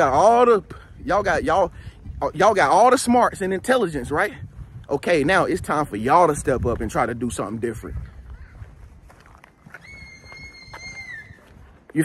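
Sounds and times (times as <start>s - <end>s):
soft footsteps: 6.6s - 12.0s
high whistling tone: 9.8s - 11.4s.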